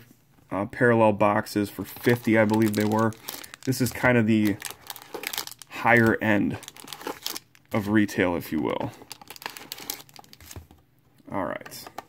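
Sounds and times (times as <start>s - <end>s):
cardboard box and packs crinkling: 1.8s - 10.7s.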